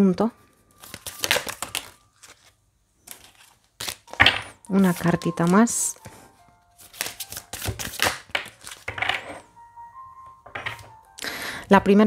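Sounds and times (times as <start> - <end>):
cards being shuffled: 0.8 - 6.1, 6.8 - 9.4.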